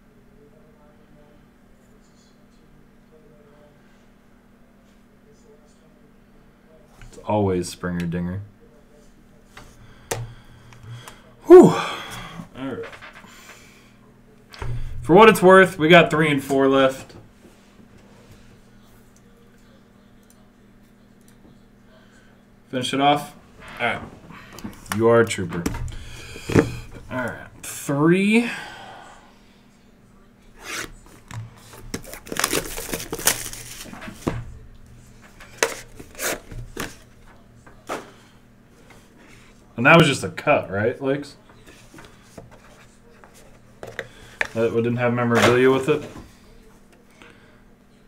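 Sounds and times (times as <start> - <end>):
man speaking: 26.9 - 28.8, 44.5 - 46.2
cardboard packaging rustling: 30.6 - 34.3.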